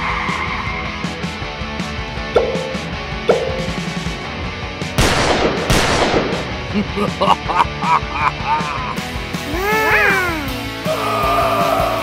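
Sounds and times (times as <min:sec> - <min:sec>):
light background music: 0:00.1 - 0:12.0.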